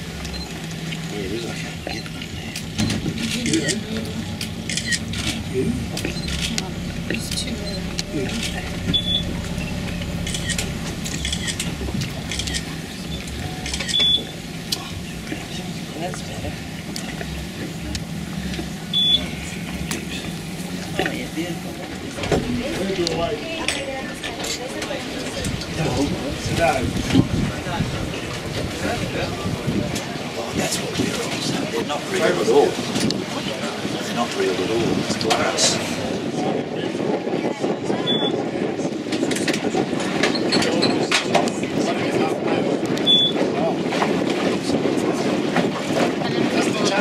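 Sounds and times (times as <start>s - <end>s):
boat engine idling: 0.0s - 36.4s
faint passenger voices: 0.0s - 47.0s.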